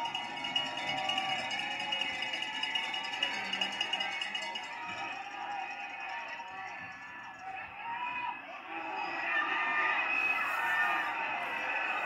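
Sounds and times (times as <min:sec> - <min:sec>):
music through tv speaker: 0:00.0 - 0:08.0.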